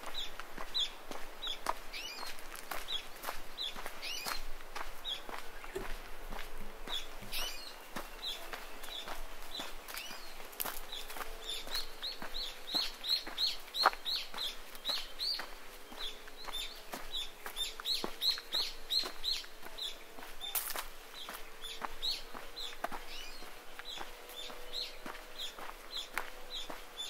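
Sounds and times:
bird chirping: 0.0s - 27.0s
footsteps on dirt track: 0.0s - 27.0s.

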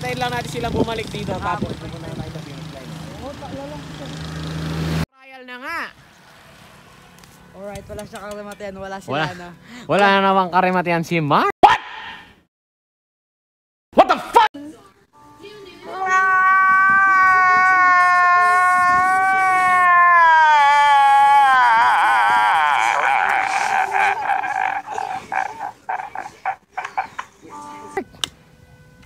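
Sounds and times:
man crying wail: 16.0s - 26.6s
man sobbing laughter: 17.3s - 27.2s.

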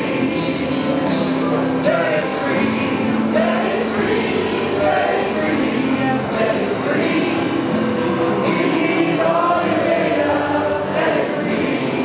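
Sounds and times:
acoustic and electric guitar: 0.0s - 12.0s
people singing together: 0.0s - 12.0s.

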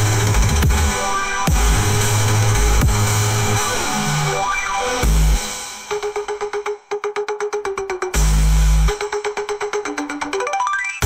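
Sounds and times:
deep synth bass: 0.0s - 5.4s.

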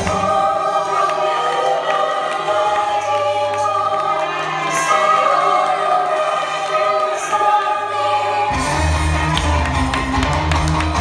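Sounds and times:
choir singing long notes: 0.0s - 9.8s.

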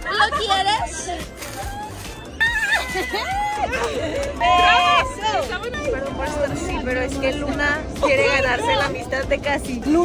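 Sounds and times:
women squealing and laughing: 0.0s - 5.2s.

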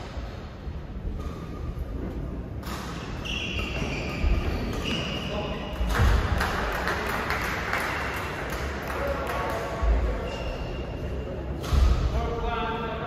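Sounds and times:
shoes squeaking on floor: 2.9s - 5.9s.

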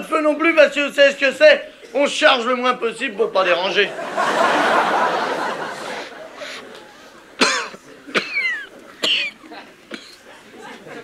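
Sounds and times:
man coughing: 7.4s - 10.2s.

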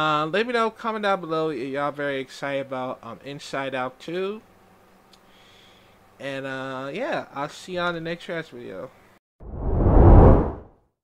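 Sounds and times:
deep whoosh: 9.4s - 10.7s.

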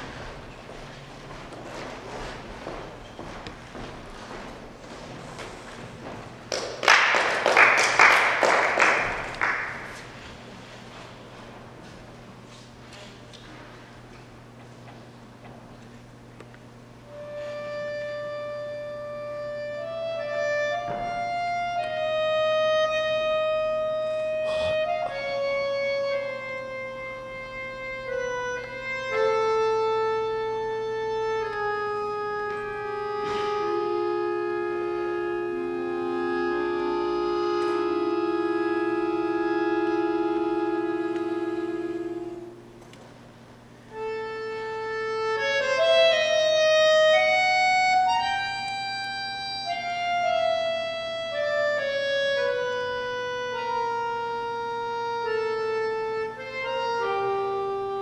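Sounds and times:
button accordion slow melody: 0.0s - 3.4s, 16.7s - 58.0s.

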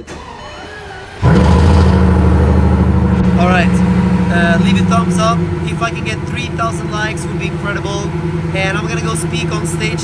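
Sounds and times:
car engine starting and idling: 0.0s - 10.0s.

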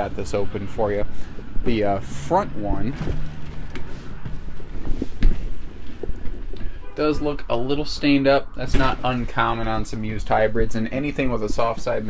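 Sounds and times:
handling and footstep rumble: 2.8s - 6.8s, 8.7s - 12.0s.

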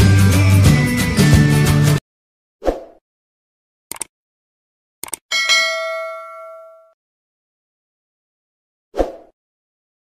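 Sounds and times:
notification bell ding: 5.3s - 7.0s.

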